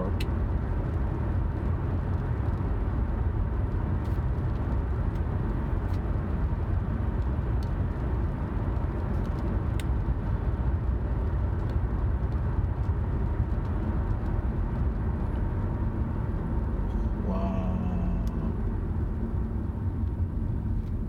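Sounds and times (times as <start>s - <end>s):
car driving rumble inside cabin: 0.0s - 21.0s.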